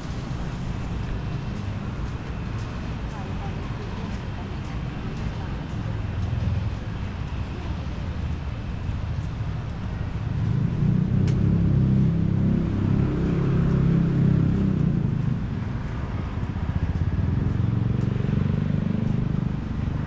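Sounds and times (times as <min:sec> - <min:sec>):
low rumble of city traffic: 0:00.0 - 0:20.0.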